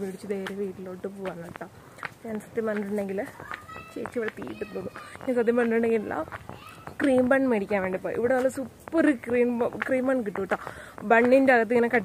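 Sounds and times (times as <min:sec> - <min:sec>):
woman talking: 0:00.0 - 0:06.4, 0:07.0 - 0:12.0.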